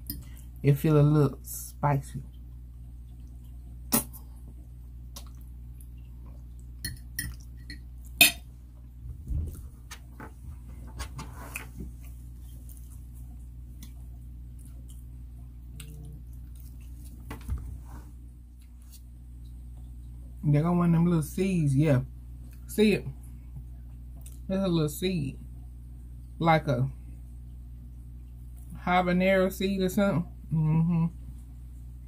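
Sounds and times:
steady low hum: 0.0s - 32.0s
chewing sounds: 2.2s - 8.2s, 11.6s - 17.3s.

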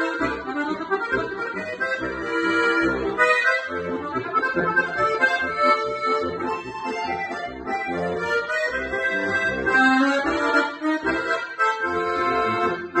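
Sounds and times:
button accordion playing polka: 0.0s - 13.0s.

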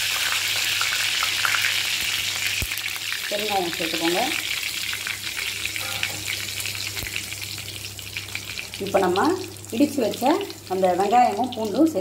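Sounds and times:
hot oil sizzling and crackling: 0.0s - 12.0s.

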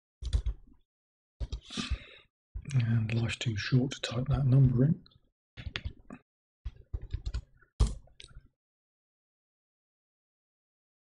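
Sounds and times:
keyboard and mouse clicks: 0.2s - 0.8s, 1.4s - 2.0s, 5.6s - 8.5s.

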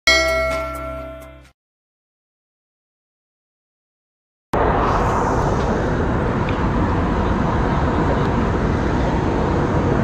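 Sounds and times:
loud metallic clang ringing: 0.1s - 1.4s.

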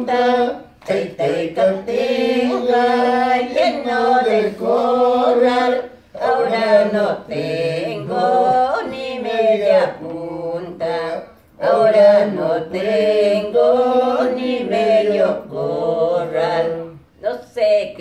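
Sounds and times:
elderly woman singing unaccompanied: 0.0s - 18.0s.

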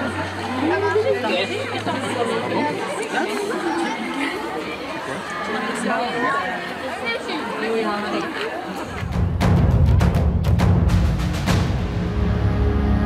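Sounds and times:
crowd chatter: 0.0s - 10.4s.

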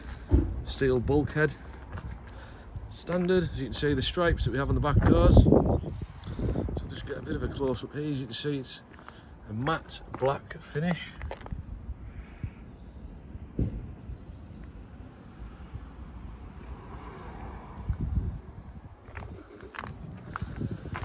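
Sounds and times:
footsteps on tarmac: 0.0s - 5.5s, 7.0s - 12.0s, 18.9s - 21.0s.

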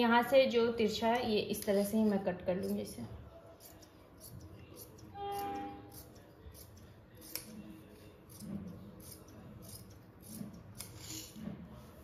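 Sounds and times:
scissors snipping fabric: 1.5s - 3.0s, 3.6s - 11.4s.

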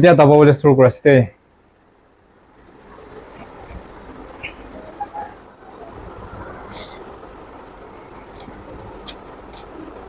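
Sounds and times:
low background rumble: 1.2s - 10.0s.

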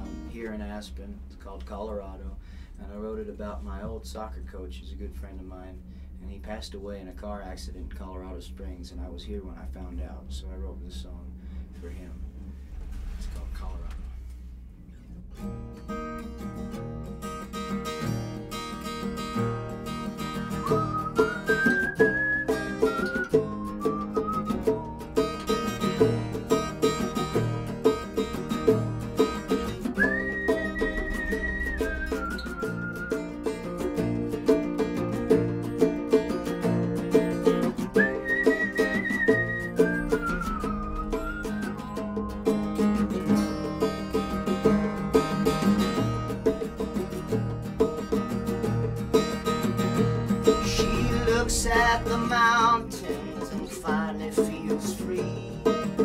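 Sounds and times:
acoustic guitars strumming: 0.0s - 56.0s
hand drum: 17.6s - 56.0s
whistled melody: 20.1s - 28.1s, 29.2s - 34.2s, 37.5s - 45.9s.

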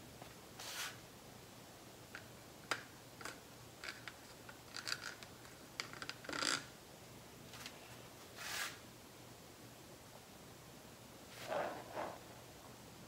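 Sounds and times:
scraping swish: 11.4s - 12.2s.

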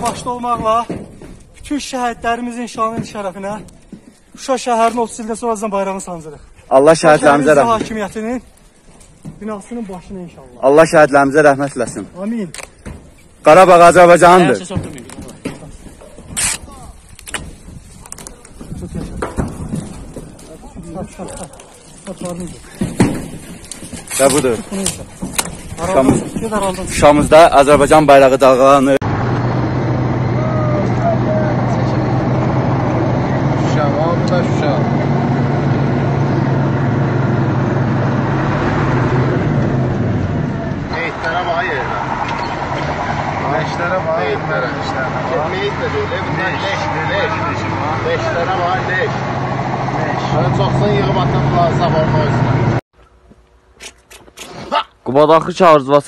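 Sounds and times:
men talking: 0.0s - 17.1s, 18.0s - 29.1s, 30.3s - 35.4s, 40.9s - 52.8s, 54.6s - 56.0s
vehicle engine and road noise: 0.0s - 54.6s.

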